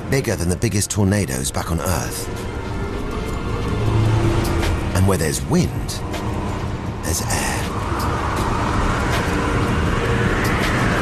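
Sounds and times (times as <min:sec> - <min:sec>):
rushing wind: 0:00.0 - 0:11.0.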